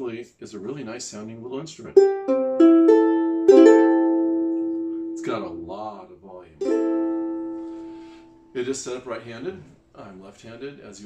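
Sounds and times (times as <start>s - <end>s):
ukulele chord strummed: 2.0s - 5.9s, 6.6s - 8.5s
ukulele plucked note: 2.0s - 5.9s, 6.6s - 8.3s.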